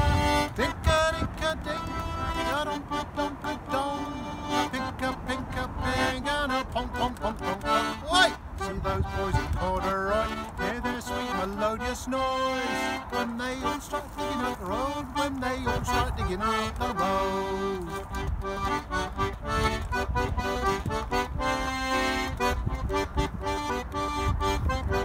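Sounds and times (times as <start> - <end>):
man singing: 0.0 - 18.3
button accordion playing folk tune: 0.0 - 25.0.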